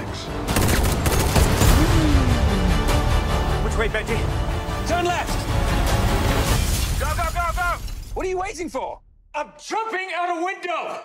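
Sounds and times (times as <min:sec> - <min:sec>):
action trailer music: 0:00.0 - 0:09.4
rapid gunfire: 0:00.5 - 0:01.9.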